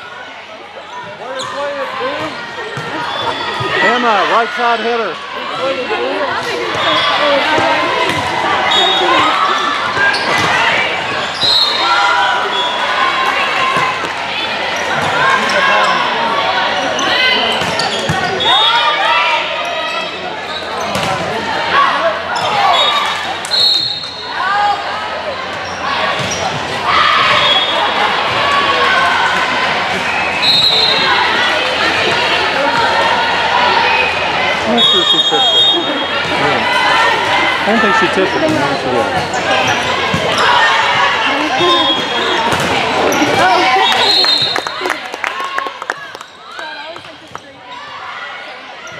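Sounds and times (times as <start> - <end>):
people calling out and cheering: 0.0 - 48.9
sneakers squeaking on court: 6.6 - 11.8, 16.9 - 18.6, 25.4 - 26.7, 38.2 - 40.6.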